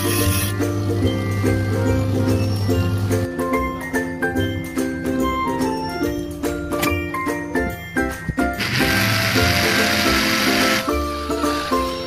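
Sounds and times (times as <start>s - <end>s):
background music: 0.0s - 12.0s
drill bit cutting steel: 8.6s - 11.9s.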